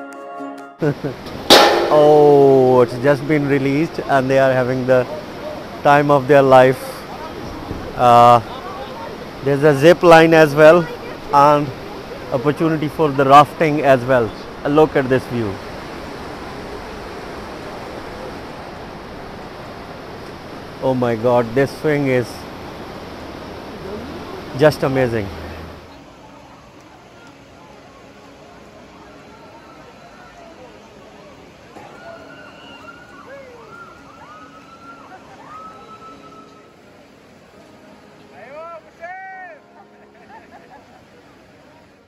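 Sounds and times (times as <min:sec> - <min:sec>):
river rushing over rapids: 0:00.9 - 0:42.0
distant voices crying out: 0:31.8 - 0:36.8.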